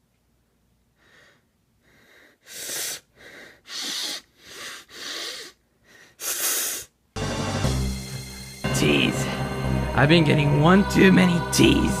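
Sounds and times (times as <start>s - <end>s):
person breathing heavily: 0.9s - 7.0s.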